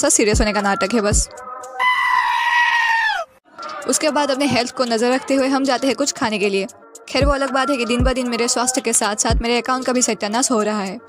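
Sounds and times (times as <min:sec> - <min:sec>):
goat screaming: 0:01.8 - 0:03.4.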